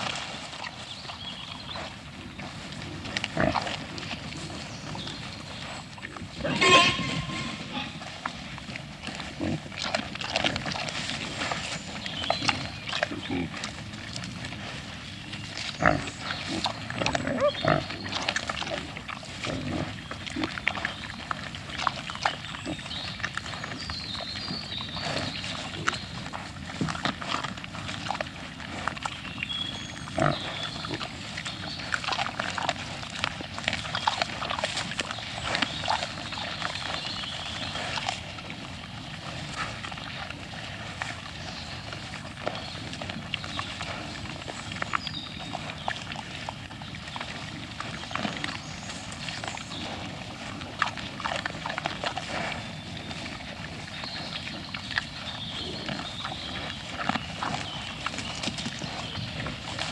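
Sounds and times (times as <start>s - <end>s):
wild boar grunting and rooting: 0.0s - 59.9s.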